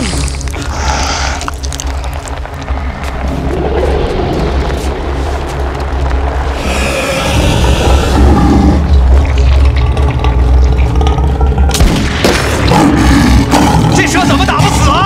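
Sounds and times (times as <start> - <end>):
deep low rumble: 0.0 - 15.0
tense film score: 0.0 - 15.0
booming hits: 11.5 - 14.0.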